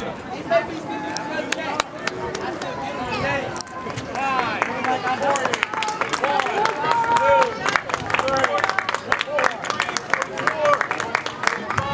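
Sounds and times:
spectators shouting: 0.4 - 10.9.

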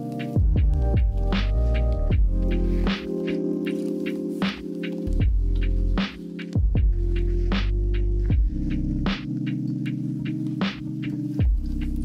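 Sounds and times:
lo-fi hip-hop music: 0.0 - 12.0.

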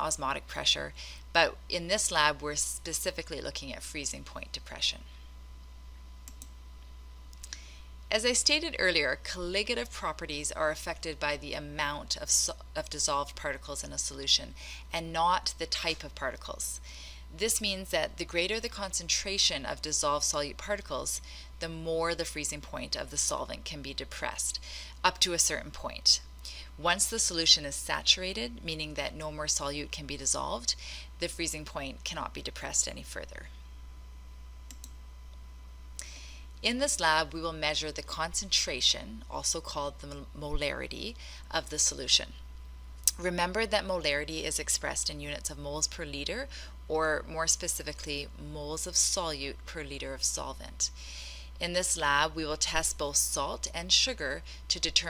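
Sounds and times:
low electrical hum: 0.0 - 55.0
computer mouse clicking: 6.2 - 6.6, 34.7 - 35.0.

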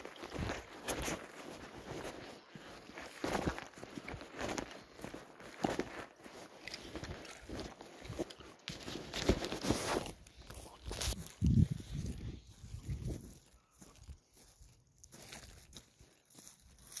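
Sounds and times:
footsteps on dry grass: 0.0 - 17.0.

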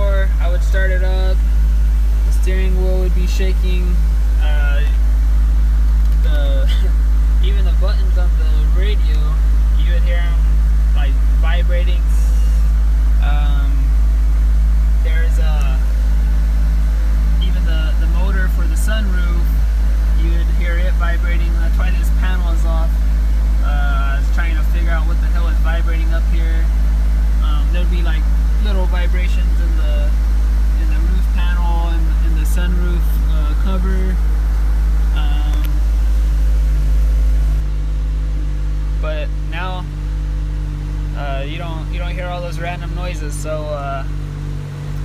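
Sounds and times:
car engine idling: 0.0 - 45.0.

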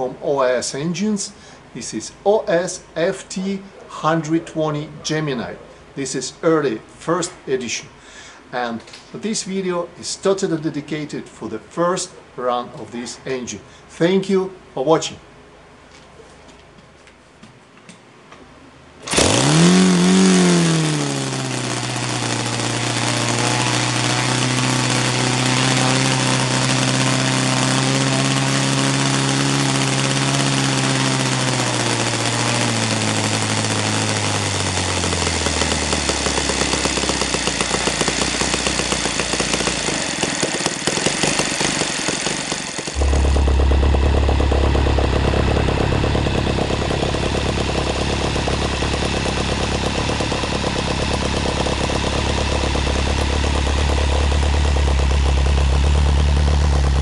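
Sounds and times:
model aircraft engine running: 19.0 - 57.0.

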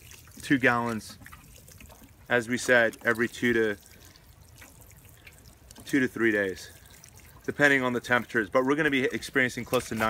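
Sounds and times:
watering can sprinkling on soil: 0.0 - 10.0.

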